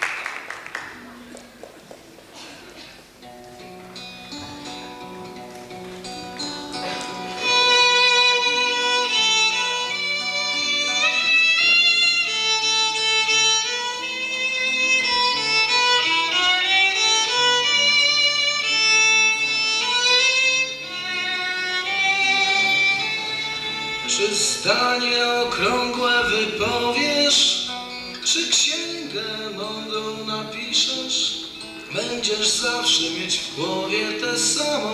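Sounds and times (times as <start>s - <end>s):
acoustic guitar accompaniment: 0.9s - 34.9s
violin melody: 3.2s - 34.9s.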